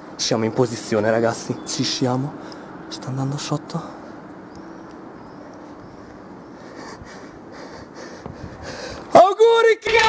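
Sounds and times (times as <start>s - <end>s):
steady low hiss: 0.0s - 9.7s.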